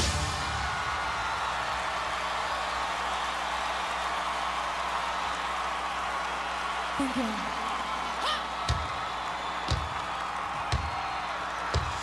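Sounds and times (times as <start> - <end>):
stadium crowd cheering and screaming: 0.0 - 12.0.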